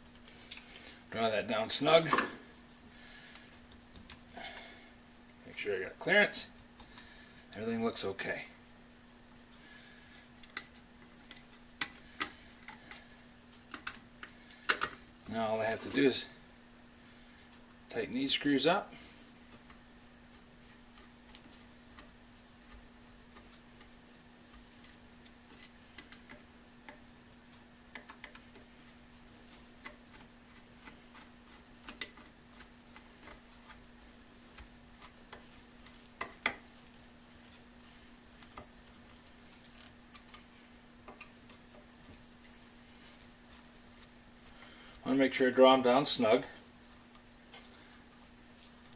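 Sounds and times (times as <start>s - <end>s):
faint steady hum: 0.0s - 48.9s.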